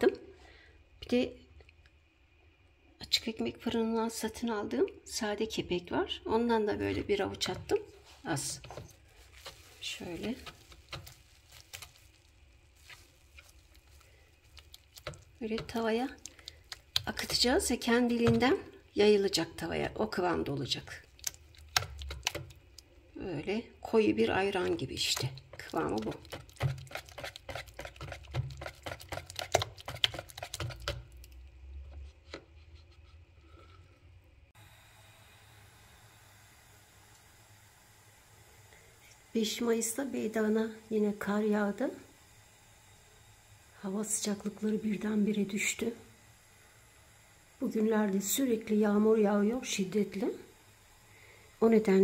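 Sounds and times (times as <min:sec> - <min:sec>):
whisk beating batter in bowl: 0:06.7 - 0:12.2, 0:12.8 - 0:22.8, 0:24.0 - 0:33.2
whisk clicking against plastic bowl: 0:24.6 - 0:31.2.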